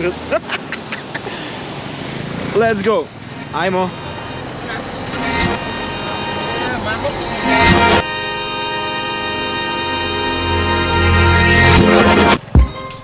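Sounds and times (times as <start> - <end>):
motorbike engine and road noise: 0.0 - 7.8
background music: 4.8 - 13.0.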